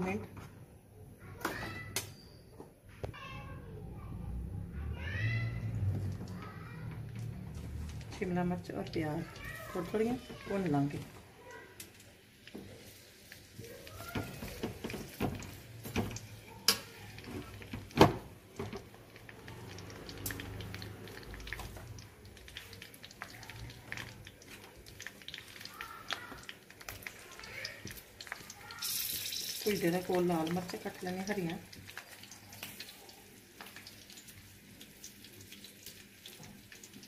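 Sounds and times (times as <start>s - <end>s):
vegetables stir-frying in oil: 4.2s - 37.0s.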